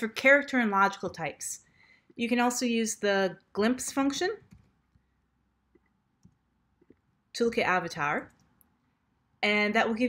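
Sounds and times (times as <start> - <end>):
faint keyboard keystrokes: 4.4 - 4.8.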